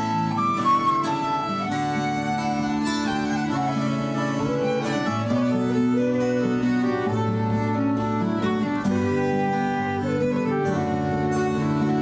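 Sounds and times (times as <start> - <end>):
accordion: 0.0 - 12.0
fiddle melody: 0.0 - 12.0
strummed acoustic guitar: 0.0 - 12.0.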